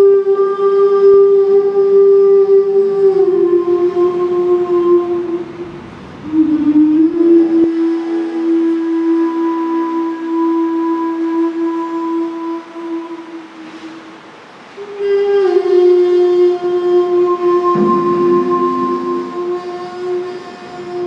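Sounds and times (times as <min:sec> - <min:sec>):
sustained droning tone: 0:17.4 - 0:21.0.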